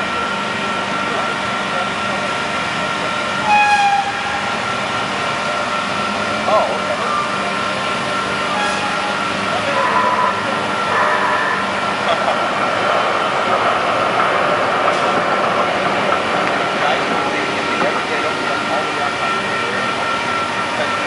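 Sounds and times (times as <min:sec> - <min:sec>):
indistinct voices: 0:06.2 - 0:21.0.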